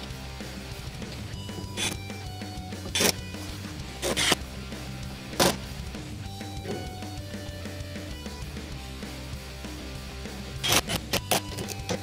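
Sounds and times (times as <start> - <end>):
guitar background music: 0.0 - 12.0.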